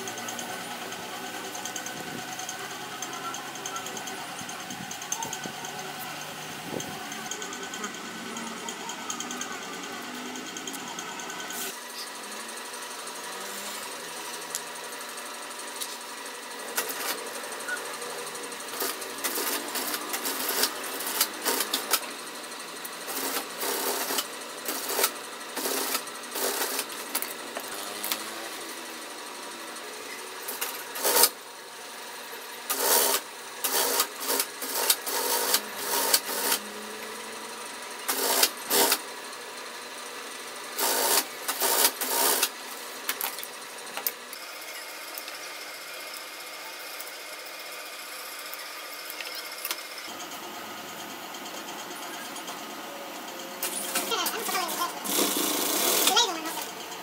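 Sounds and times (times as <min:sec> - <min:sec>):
sewing machine stitching: 0:00.0 - 0:31.5, 0:32.6 - 0:39.1, 0:40.7 - 0:50.4, 0:53.4 - 0:57.0.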